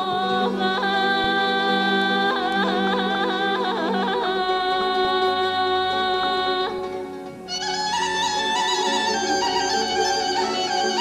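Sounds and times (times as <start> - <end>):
folk band holding notes: 0.0 - 11.0
woman singing ornamented melody: 0.0 - 11.0.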